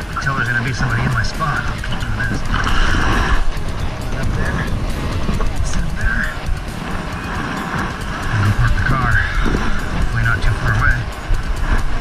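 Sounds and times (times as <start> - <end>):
low held tone: 0.0 - 12.0
wavering high melody: 0.0 - 12.0.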